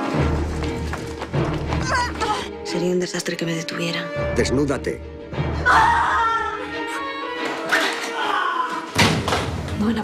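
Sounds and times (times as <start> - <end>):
film trailer music: 0.0 - 10.0.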